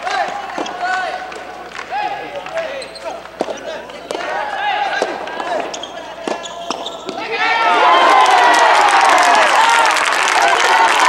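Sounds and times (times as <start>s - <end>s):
hand clapping: 0.0s - 4.4s
people shouting together: 4.2s - 5.7s, 7.1s - 11.0s.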